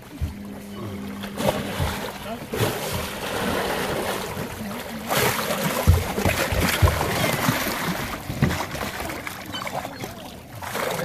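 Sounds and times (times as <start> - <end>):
low knocks against boat: 0.0 - 10.3
water splashing and sloshing: 0.0 - 11.0.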